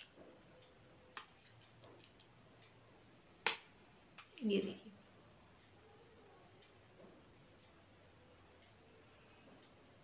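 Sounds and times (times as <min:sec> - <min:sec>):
faint metal ticks: 0:06.4 - 0:10.0.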